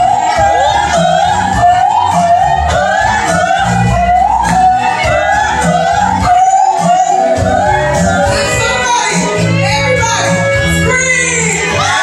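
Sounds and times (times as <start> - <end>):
soul backing track: 0.0 - 12.0
woman singing into microphone: 0.0 - 12.0.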